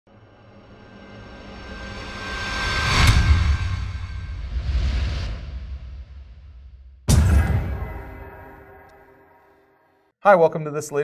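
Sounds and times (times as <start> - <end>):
sharp hit with bass rumble: 2.9 - 9.2.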